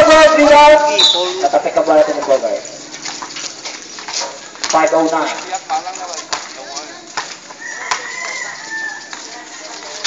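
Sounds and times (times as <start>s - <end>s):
chatter of spectators and players: 3.6s - 10.0s.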